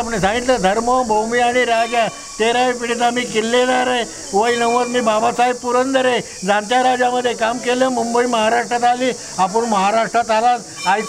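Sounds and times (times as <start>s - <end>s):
high-pitched hiss: 0.0s - 11.0s
man talking: 0.0s - 11.0s.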